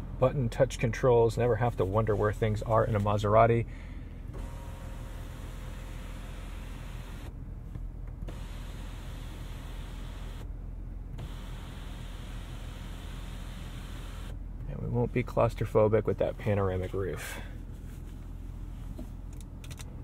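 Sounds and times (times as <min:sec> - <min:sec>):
low cabin hum: 0:00.0 - 0:20.0.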